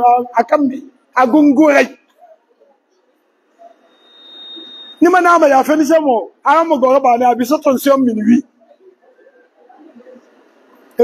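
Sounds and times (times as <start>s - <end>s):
faint high-pitched tone: 2.2s - 5.8s.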